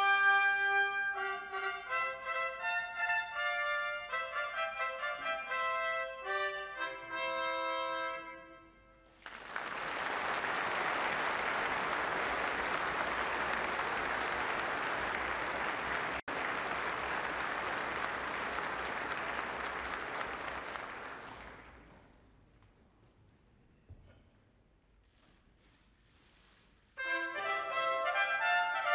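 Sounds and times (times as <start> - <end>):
brass fanfare: 0.0 - 8.8, 27.0 - 28.9
large audience applauding: 9.2 - 22.0.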